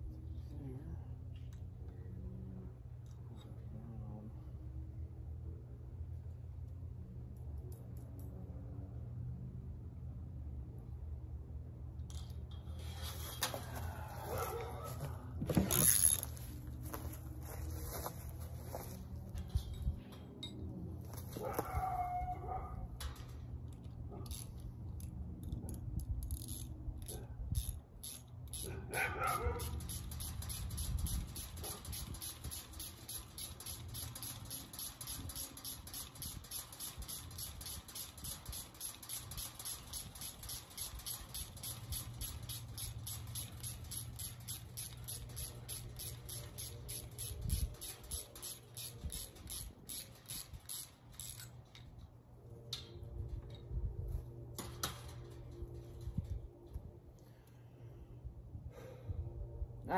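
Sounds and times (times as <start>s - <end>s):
low steady hum: 0.0s - 59.9s.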